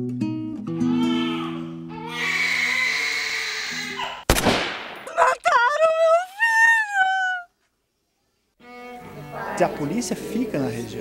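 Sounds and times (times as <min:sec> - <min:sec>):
high wailing cry: 0:00.8 - 0:04.2, 0:05.0 - 0:07.5
gunshot: 0:04.3 - 0:05.1.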